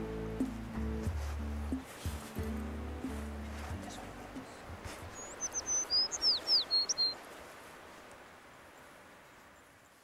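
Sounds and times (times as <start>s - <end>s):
songbird singing high notes: 5.1s - 7.2s.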